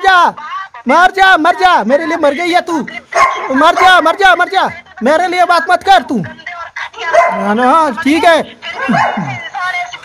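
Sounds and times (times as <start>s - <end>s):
raised voices arguing: 0.0s - 10.0s.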